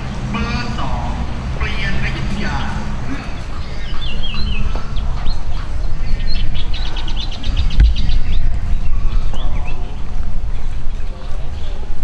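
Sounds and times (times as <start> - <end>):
low rumble: 0.0 - 12.0
small birds chirping: 0.0 - 12.0.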